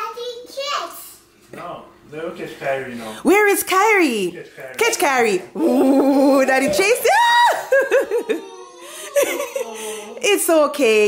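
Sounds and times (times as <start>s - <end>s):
toddler and adult laughing: 7.7s - 10.1s.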